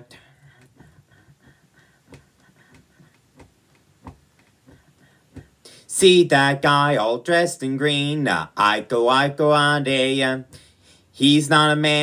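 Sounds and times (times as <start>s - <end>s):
faint taps keeping time: 0.2s - 5.6s.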